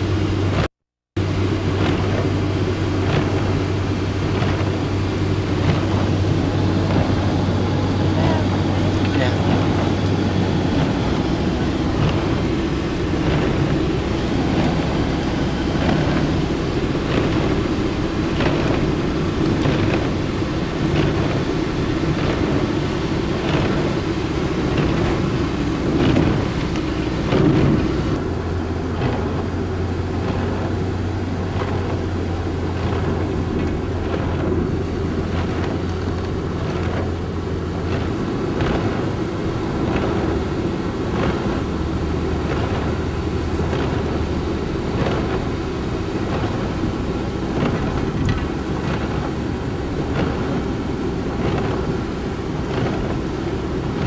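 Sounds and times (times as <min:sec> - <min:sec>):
car engine and tyre noise: 0:00.0 - 0:54.0
rain: 0:00.0 - 0:54.0.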